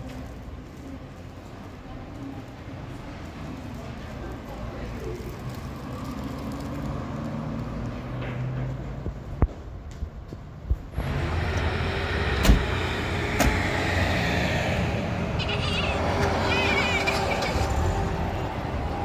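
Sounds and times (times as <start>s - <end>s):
car doors shutting: 12.4s - 13.6s.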